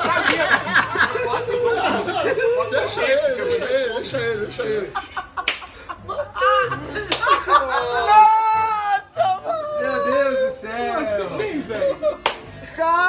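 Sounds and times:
men laughing hard: 0.0 - 10.3
men shouting: 7.5 - 11.8.

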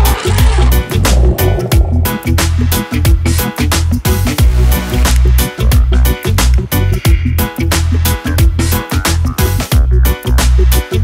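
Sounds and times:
deep bass line: 0.0 - 8.8.

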